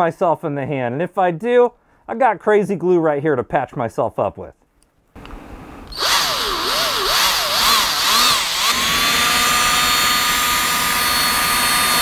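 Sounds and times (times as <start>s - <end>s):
cordless drill boring into foam: 5.8s - 12.0s.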